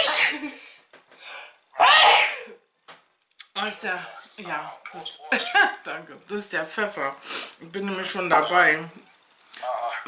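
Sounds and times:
woman sneezing: 0.0s - 0.4s, 1.8s - 2.6s.

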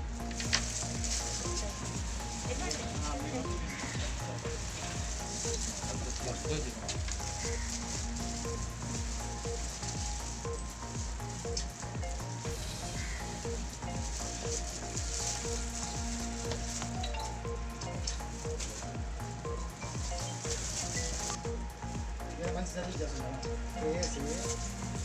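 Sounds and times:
crackling hiss with clicks: 0.0s - 25.0s
soft repeating notes: 0.0s - 25.0s.

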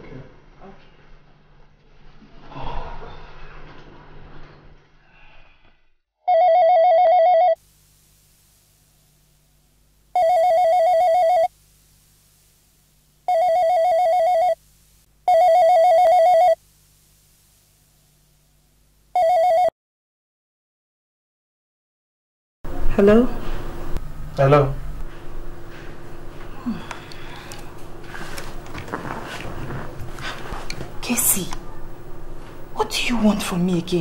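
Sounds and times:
telephone ringing with warbling trill: 6.3s - 7.6s, 10.2s - 11.5s, 13.3s - 14.6s, 15.3s - 16.6s, 19.2s - 19.7s.

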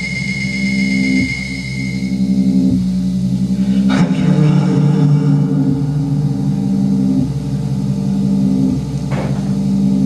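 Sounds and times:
sweeping electronic burst: 0.0s - 8.8s
buzzing electronic drone: 0.0s - 10.0s.

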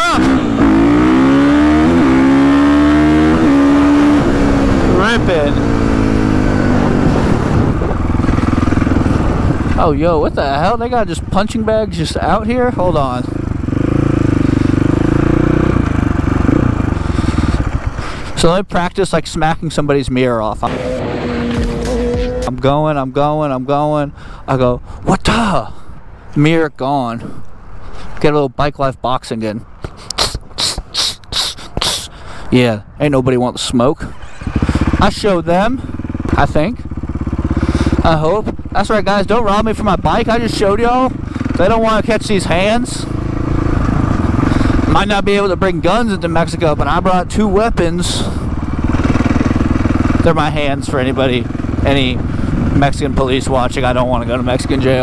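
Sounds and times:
dirt bike engine: 0.0s - 18.4s, 20.6s - 23.6s, 33.9s - 55.0s.

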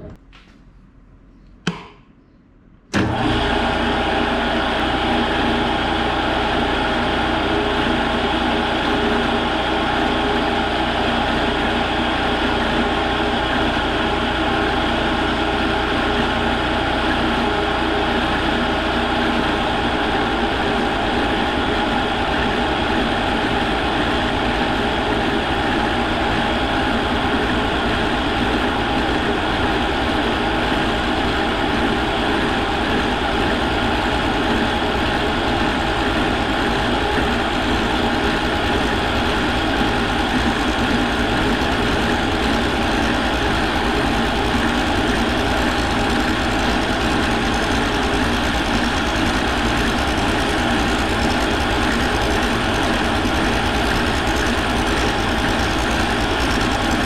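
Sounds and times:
milling machine cutting metal: 31.4s - 57.0s.

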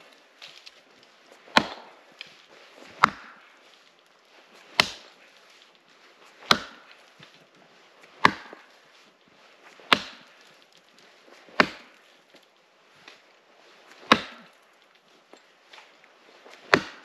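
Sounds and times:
axe chopping wood: 1.4s - 2.1s, 2.8s - 3.5s, 4.6s - 5.2s, 6.4s - 7.1s, 8.1s - 8.7s, 9.7s - 10.5s, 11.3s - 12.0s, 13.9s - 14.6s, 16.5s - 17.0s.

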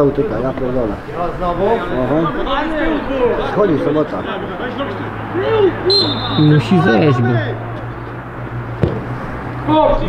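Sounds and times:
men talking and calling out: 0.0s - 10.0s.

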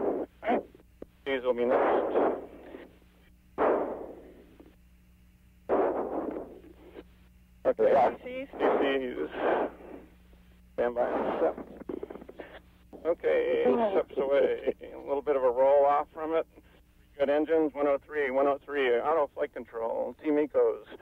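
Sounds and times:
steady electrical hum: 0.0s - 21.0s
voices over radio intercom: 6.8s - 10.1s, 10.8s - 21.0s.

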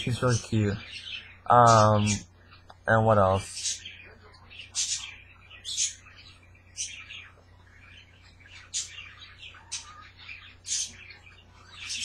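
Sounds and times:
faint low hum: 0.0s - 12.0s
parrots chirping: 0.0s - 12.0s.

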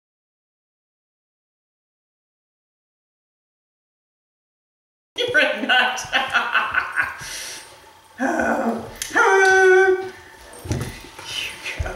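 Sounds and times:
puppy whining howls: 8.2s - 10.2s.

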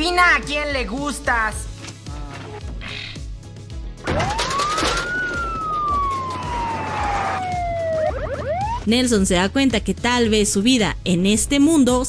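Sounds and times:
background music: 0.0s - 12.0s
siren-like whistling tone: 4.2s - 8.9s.

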